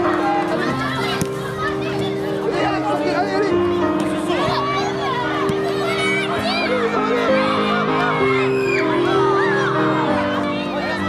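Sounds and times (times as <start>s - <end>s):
children shouting: 0.0s - 2.9s, 3.7s - 11.0s
background music with held notes: 0.0s - 11.0s.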